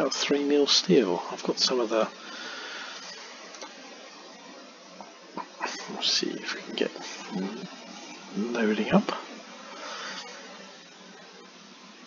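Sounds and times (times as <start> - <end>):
microphone hiss: 0.0 - 12.0.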